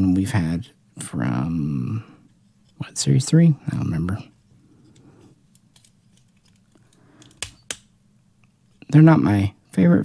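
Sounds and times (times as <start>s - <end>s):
plastic toy handling ticks: 4.9s - 7.9s.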